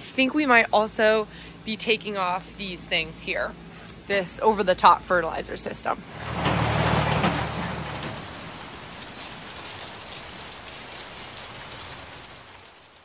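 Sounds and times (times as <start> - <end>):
low rumble: 6.0 - 11.1
rain-like hiss: 6.0 - 13.0.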